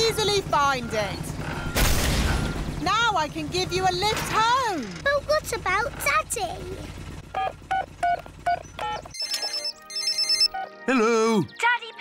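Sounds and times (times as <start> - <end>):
low helicopter hum: 0.0 - 10.6
phone ringing with electronic trill: 7.3 - 10.8
phone keypad beeping: 7.4 - 10.7.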